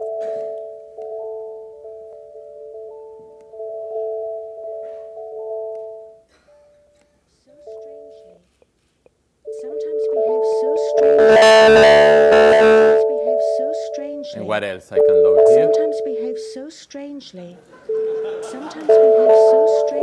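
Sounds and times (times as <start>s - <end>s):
wavering sung voice: 9.5s - 17.1s, 18.0s - 20.0s
electronic music over speakers: 11.0s - 13.0s.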